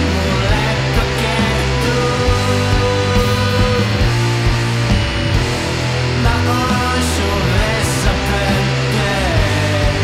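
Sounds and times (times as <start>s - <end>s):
punk rock band playing: 0.0s - 10.0s.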